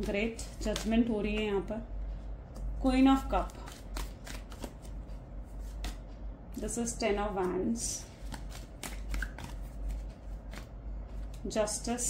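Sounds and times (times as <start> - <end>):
cards being shuffled: 0.0 - 1.1, 2.6 - 6.2, 8.0 - 11.5.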